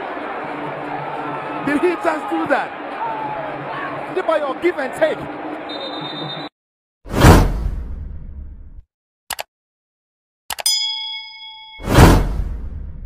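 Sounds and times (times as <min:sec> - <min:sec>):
bell ding: 0:10.6 - 0:12.2.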